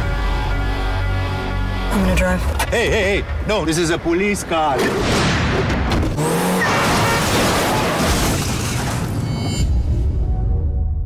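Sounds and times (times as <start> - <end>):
loud film trailer music: 0.0 - 6.4, 8.9 - 11.0
car engine revving hard: 6.1 - 8.0.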